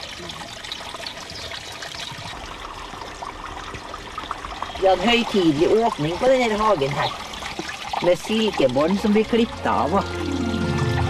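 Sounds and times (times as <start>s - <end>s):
water trickling: 0.0s - 11.0s.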